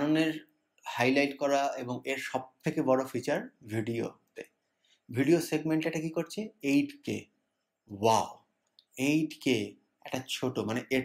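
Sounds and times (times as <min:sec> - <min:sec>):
man speaking: 0:00.0 - 0:04.5, 0:05.1 - 0:07.3, 0:07.9 - 0:11.0.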